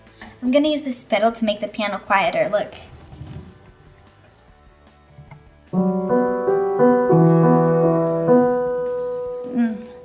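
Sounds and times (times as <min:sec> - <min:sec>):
faint music: 0:00.0 - 0:10.0.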